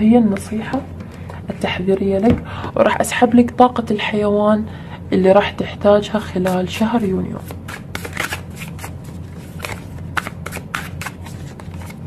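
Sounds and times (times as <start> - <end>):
cards being shuffled by hand: 6.4 - 12.0.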